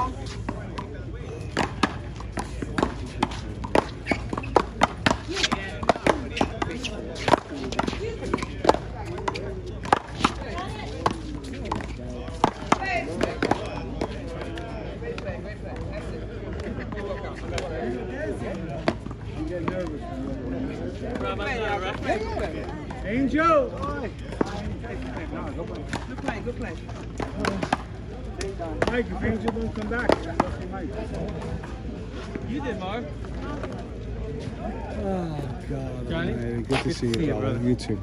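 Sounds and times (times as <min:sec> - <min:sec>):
ball smacking paddles and wall: 0:00.3 - 0:15.9, 0:23.8 - 0:32.4.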